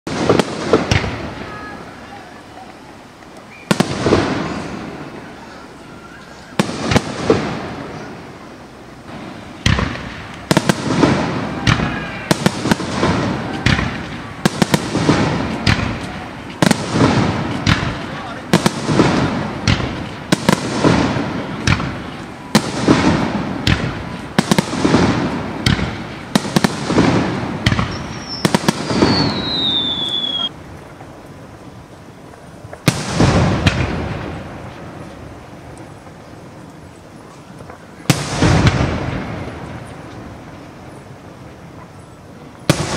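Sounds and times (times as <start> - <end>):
firework shells booming: 0.1 - 1.8, 3.5 - 5.6, 6.5 - 8.3, 9.1 - 30.5, 32.6 - 36.2, 37.6 - 40.8, 42.6 - 42.9
falling firework whistle: 3.4 - 8.2, 9.8 - 17.9, 26.4 - 30.6.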